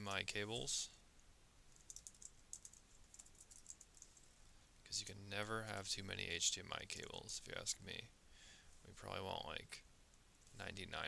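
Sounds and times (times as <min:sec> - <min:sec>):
typing on computer keyboard: 0:01.7 - 0:04.2.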